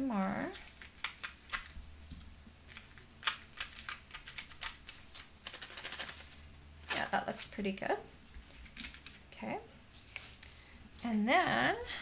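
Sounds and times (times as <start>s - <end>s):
candies clicking in plastic dome: 0.5s - 1.8s, 2.7s - 6.4s.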